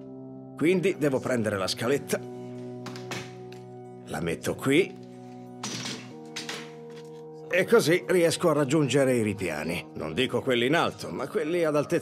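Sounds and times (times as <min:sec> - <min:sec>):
background music with held chords: 0:00.0 - 0:12.0
metal step stool clacking on floor: 0:05.6 - 0:06.8.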